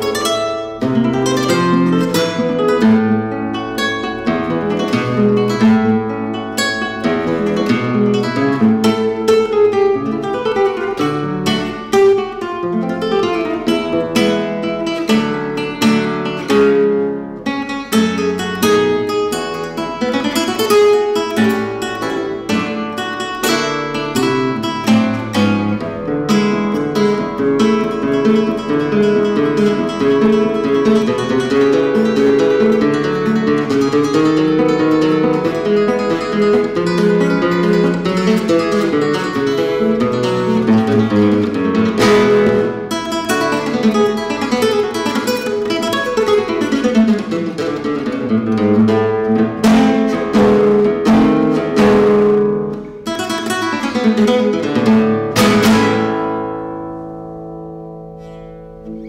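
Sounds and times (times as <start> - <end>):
classical guitar playing: 0.0 - 59.0.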